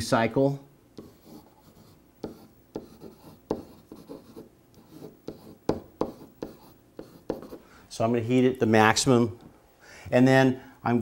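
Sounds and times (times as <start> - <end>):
marker writing on whiteboard: 1.0 - 7.6.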